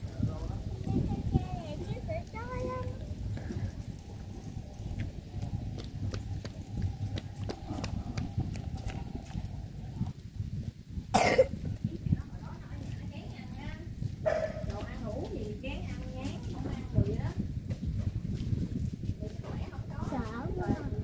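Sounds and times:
steady low drone: 0:00.0 - 0:12.4
loud cough: 0:11.1 - 0:11.6.

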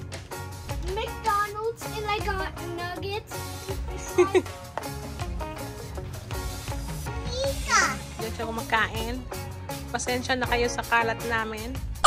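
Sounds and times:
upbeat background music: 0:00.0 - 0:12.0.

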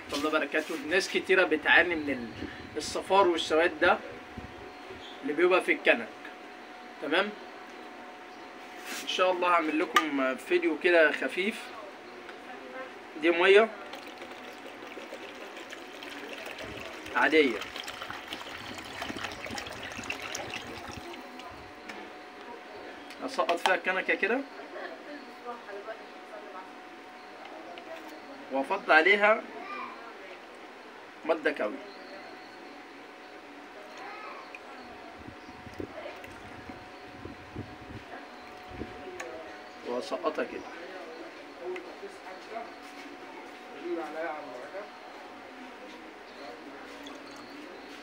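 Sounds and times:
water trickling into plastic bucket: 0:13.7 - 0:21.8, 0:35.6 - 0:37.4, 0:47.0 - 0:47.6.

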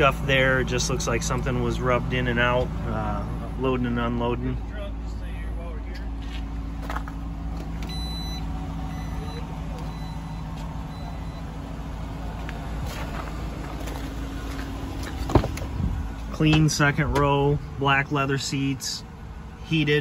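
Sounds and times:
car engine idling: 0:00.0 - 0:20.0
faint high beeps: 0:07.9 - 0:11.6.

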